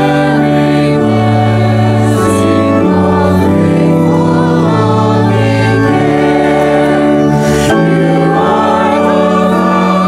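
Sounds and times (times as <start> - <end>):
group of voices singing hymn: 0.0 - 10.0.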